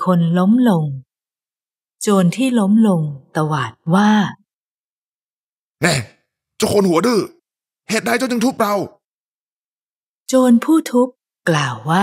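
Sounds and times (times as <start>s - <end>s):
narrator speaking: 5.8s - 9.0s.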